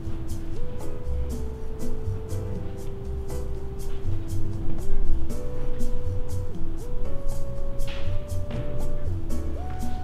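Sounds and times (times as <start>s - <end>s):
smooth melody over a beat: 0.0s - 10.0s.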